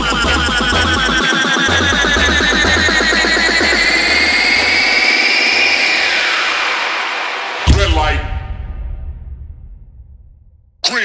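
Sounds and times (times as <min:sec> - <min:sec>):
bass line: 0:00.0 - 0:06.2, 0:07.7 - 0:10.8
fast repeating synth pattern: 0:00.0 - 0:08.0
rising synth sweep: 0:00.0 - 0:09.9.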